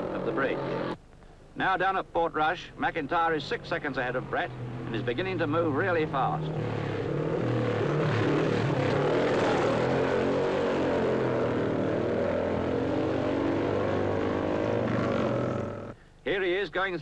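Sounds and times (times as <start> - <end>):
racing motorcycle engine: 0.0 - 1.0, 3.4 - 16.0.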